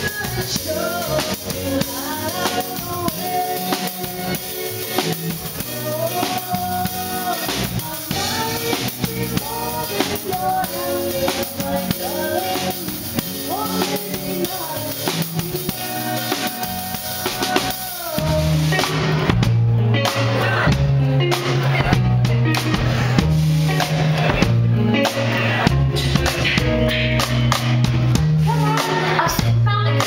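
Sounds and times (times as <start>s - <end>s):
band playing live: 0.0s - 30.0s
drum kit: 0.0s - 30.0s
steady bass line: 0.0s - 30.0s.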